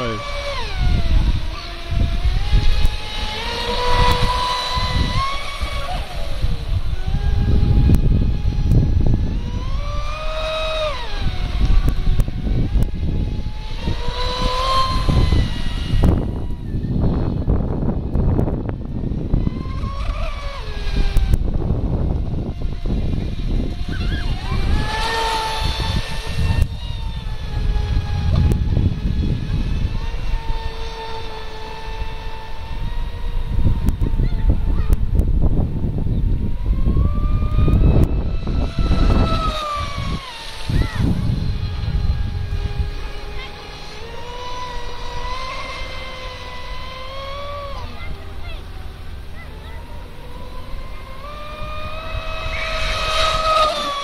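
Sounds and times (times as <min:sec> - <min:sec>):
electric motor whining: 0:00.0 - 0:54.0
wind buffeting microphone: 0:00.0 - 0:54.0.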